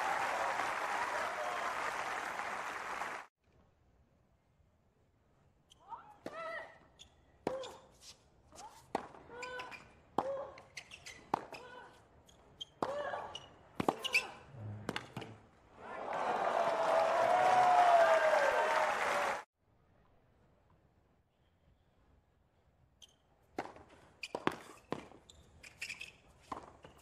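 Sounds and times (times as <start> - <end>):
crowd applauding and cheering: 0.0 - 3.3, 15.8 - 19.5
racket striking tennis ball: 13.8 - 15.4, 23.5 - 25.2.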